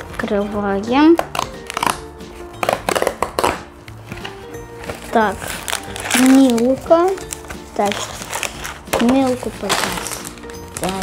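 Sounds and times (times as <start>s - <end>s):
background music: 0.0s - 11.0s
cardboard box tearing: 4.8s - 10.9s.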